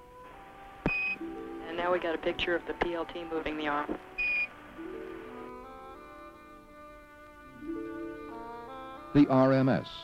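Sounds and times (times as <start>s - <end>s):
slow music with long-held notes: 0.0s - 10.0s.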